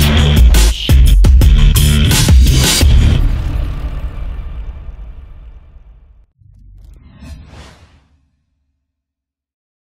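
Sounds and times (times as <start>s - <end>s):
low rumble: 2.8s - 8.4s
whoosh sound effect: 6.4s - 8.5s.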